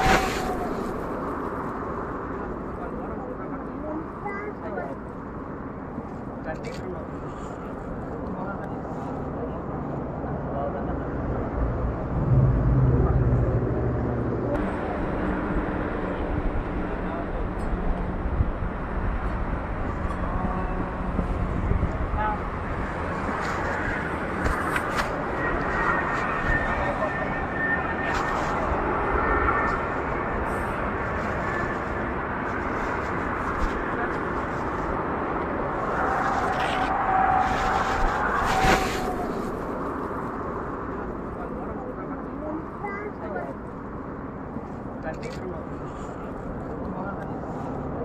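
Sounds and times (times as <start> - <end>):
hum of vehicles: 0.0 - 48.0
wind: 0.0 - 48.0.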